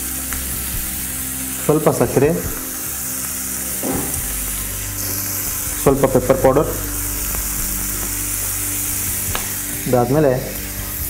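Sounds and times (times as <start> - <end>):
vegetables sizzling in a frying pan: 0.0 - 11.0.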